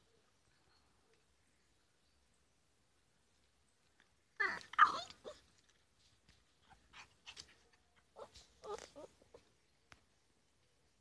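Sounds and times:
puppy whimpering: 4.4 - 5.4, 8.2 - 9.5
puppy yelping: 4.4 - 5.5, 6.7 - 9.5.

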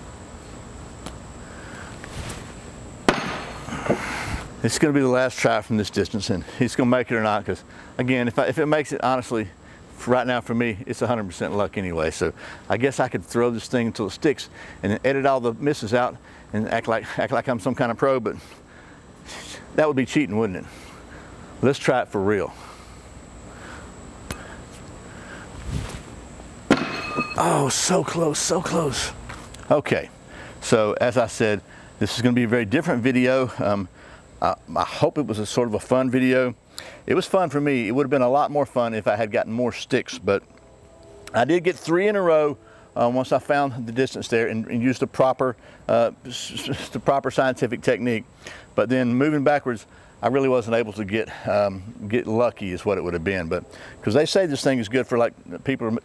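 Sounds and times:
faint steady hiss: 0.0 - 56.0
steel spike knocking into wood: 3.1 - 3.5, 26.7 - 27.4.

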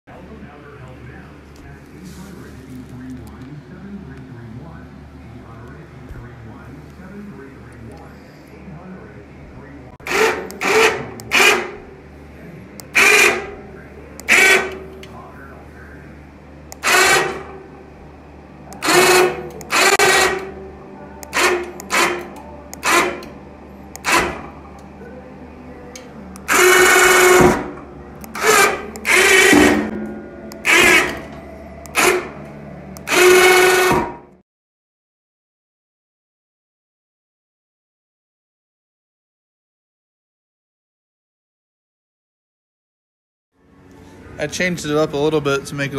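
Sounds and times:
electric winch motor whining: 10.0 - 11.8, 12.9 - 13.6, 14.2 - 15.0, 16.7 - 17.6, 18.8 - 20.6, 21.2 - 24.6, 26.2 - 34.2.

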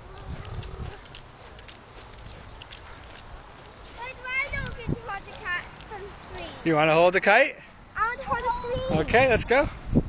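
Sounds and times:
wind on microphone: 0.0 - 5.6, 8.1 - 10.0.

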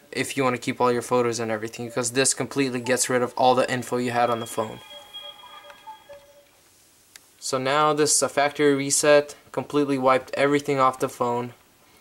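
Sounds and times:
phone startup chime: 1.8 - 6.6.

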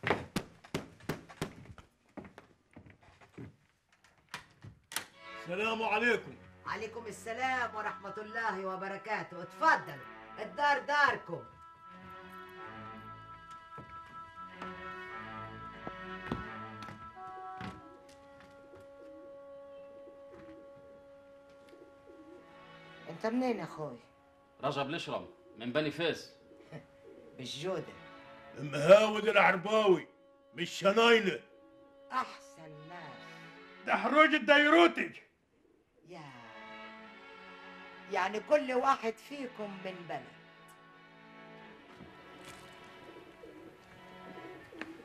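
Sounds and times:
held background music tone: 5.1 - 35.2, 36.2 - 45.0
pigeons cooing: 18.6 - 22.5, 26.2 - 27.4, 43.0 - 45.0
bird cooing: 26.3 - 27.4, 43.1 - 45.0.

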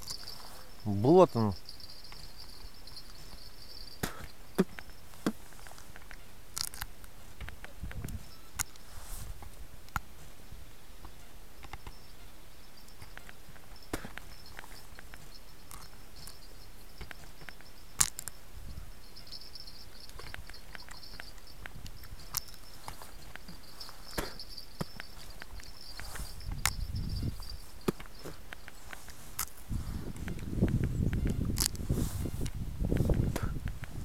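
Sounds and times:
faint high chirping: 0.0 - 32.9
small sharp clicks: 1.7 - 10.1, 11.0 - 12.2, 12.9 - 18.5, 19.1 - 34.0.

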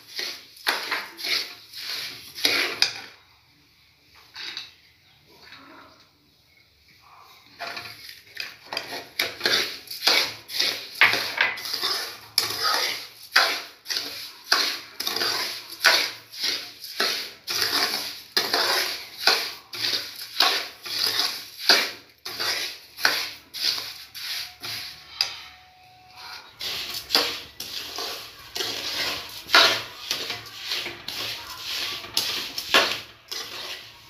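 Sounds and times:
spoon scraping steel pan: 0.0 - 3.2, 7.6 - 34.0.

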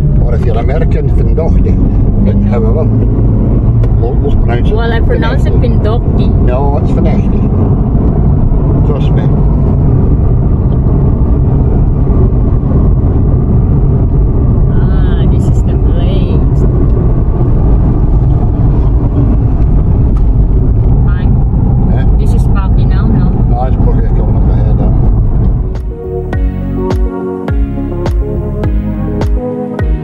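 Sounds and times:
car cabin road and engine rumble: 0.0 - 30.0.

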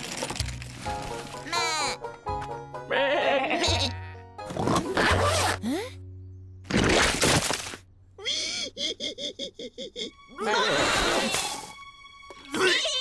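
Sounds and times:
light background music: 0.3 - 7.0, 9.6 - 13.0
cartoon sheep bleating: 1.4 - 2.0, 2.9 - 4.2.

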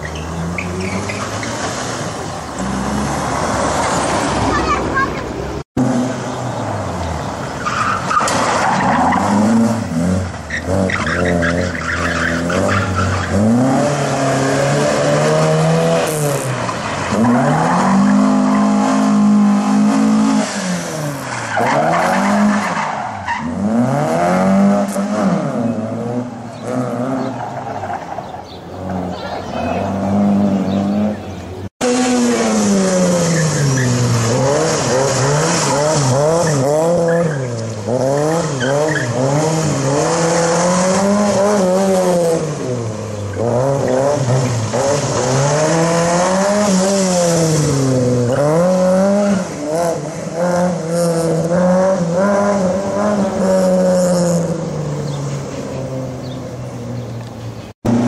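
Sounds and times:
car engine revving: 0.0 - 28.1, 28.7 - 57.1
small car engine revving: 23.4 - 27.4, 28.7 - 57.1.

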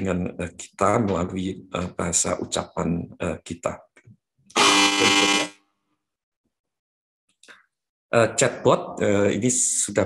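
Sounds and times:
loud buzzing horn tone: 4.5 - 5.6.

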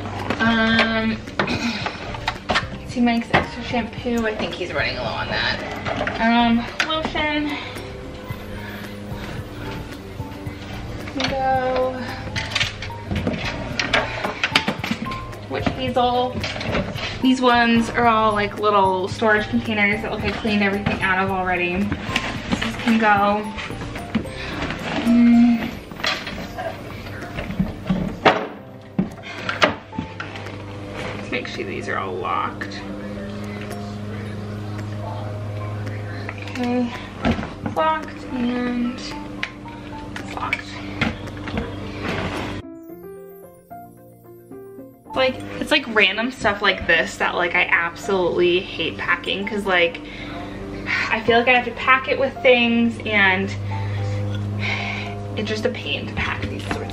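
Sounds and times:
plastic bottles clinking: 0.0 - 38.1
steady low hum: 0.0 - 42.7, 44.5 - 56.9
background music: 0.0 - 56.9.

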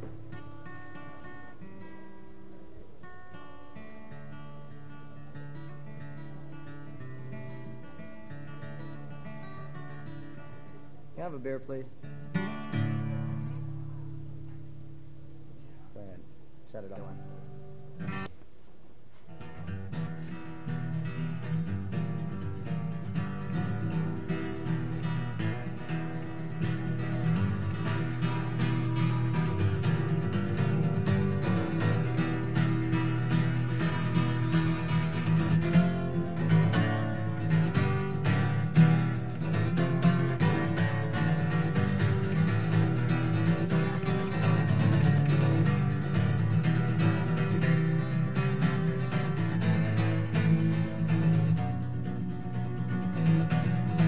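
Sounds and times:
acoustic guitar strummed and picked: 0.0 - 18.4, 19.1 - 54.0.

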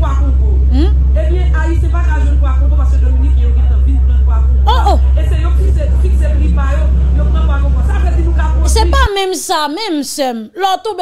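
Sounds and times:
loud low rumble: 0.0 - 9.2.

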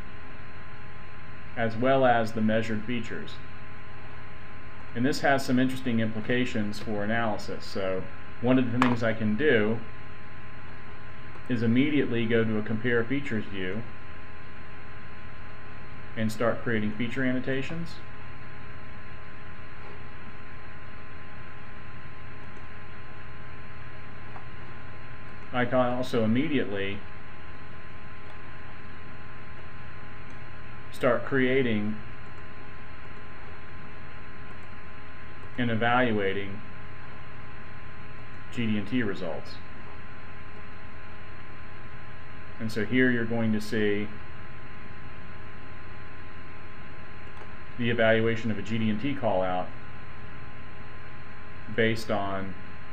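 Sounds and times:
electrical hum: 0.0 - 52.9.

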